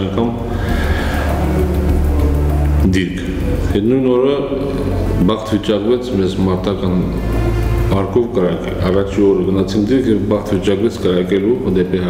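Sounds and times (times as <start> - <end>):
man's voice: 0.0 - 1.9, 2.7 - 12.0
background music with low notes: 0.0 - 12.0.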